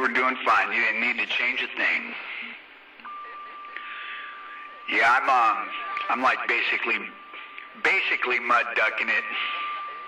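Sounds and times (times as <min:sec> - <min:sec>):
steady high whistle: 0:09.3 - 0:10.0.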